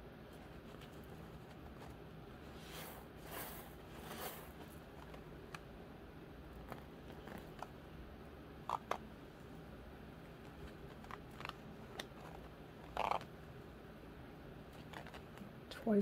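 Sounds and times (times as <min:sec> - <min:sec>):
soft rustle: 0:00.3 - 0:05.3.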